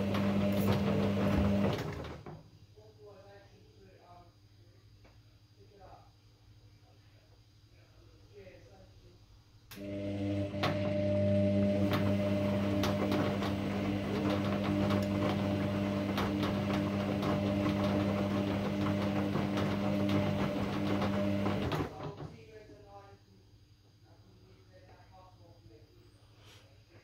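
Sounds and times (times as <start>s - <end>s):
washing machine motor hum: 0.0s - 2.5s, 9.7s - 22.6s.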